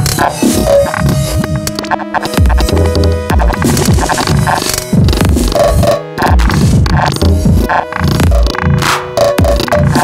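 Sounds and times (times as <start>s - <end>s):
electronic music with chopped drums: 0.0s - 10.0s.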